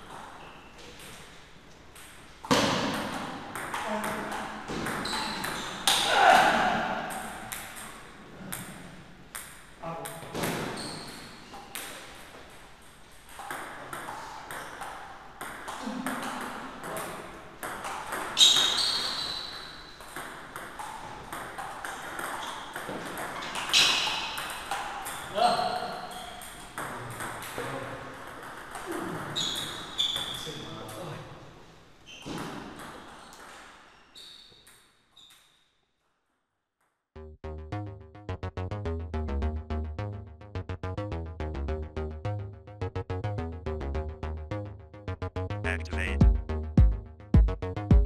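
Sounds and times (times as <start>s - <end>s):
voices: 45.7s - 46.2s.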